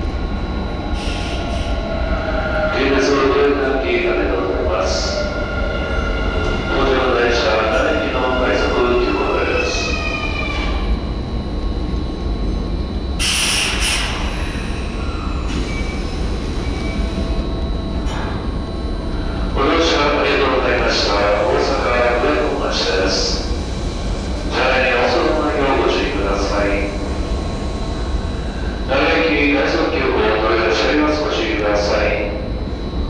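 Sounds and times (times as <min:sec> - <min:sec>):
electric train rumbling: 0:00.0 - 0:33.0
voices echoing in station: 0:00.0 - 0:33.0
air hiss: 0:13.2 - 0:14.8.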